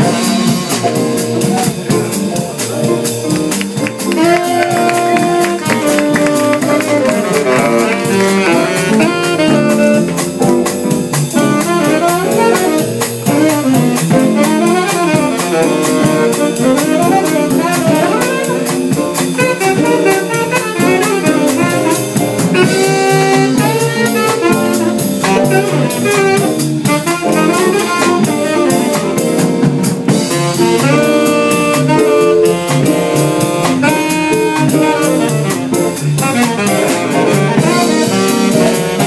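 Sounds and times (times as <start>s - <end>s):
drum kit cymbals: 0.0s - 39.0s
saxophone melody: 0.0s - 39.0s.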